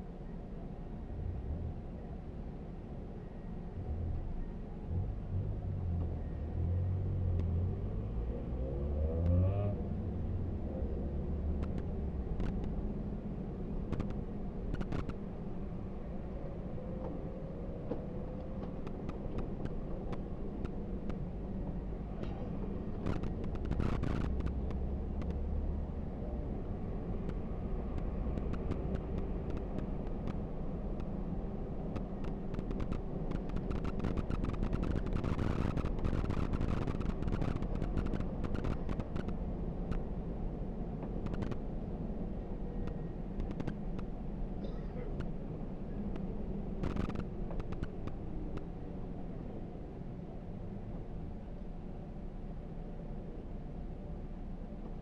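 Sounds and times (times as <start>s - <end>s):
bus engine rumbling: 9.8s - 55.0s
faint clicks: 13.9s - 15.2s, 31.9s - 40.0s, 42.8s - 45.4s, 46.1s - 48.7s.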